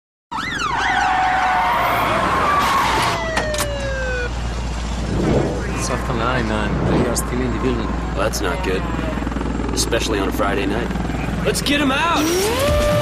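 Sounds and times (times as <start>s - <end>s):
emergency vehicle siren: 0.3s - 9.7s, 12.2s - 13.0s
background rumble: 4.3s - 11.2s
voices: 5.4s - 12.6s.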